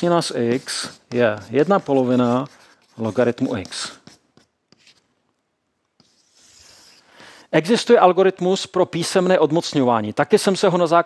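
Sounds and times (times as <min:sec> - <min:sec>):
chalk tapping and scratching: 0:00.0 - 0:05.1, 0:06.0 - 0:07.0.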